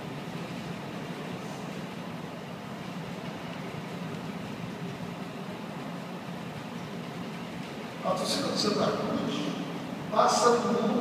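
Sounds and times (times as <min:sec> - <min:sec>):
hall room noise low rumble: 0:00.0 - 0:11.0.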